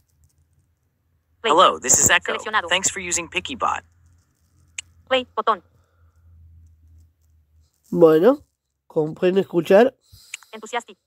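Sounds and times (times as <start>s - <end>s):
low steady background hum: 0.0s - 11.0s
person speaking: 1.4s - 3.8s.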